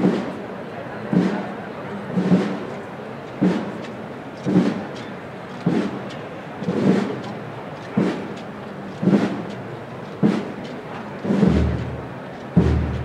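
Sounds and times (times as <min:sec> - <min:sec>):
slow thuds with scraping: 0:05.5 - 0:13.0.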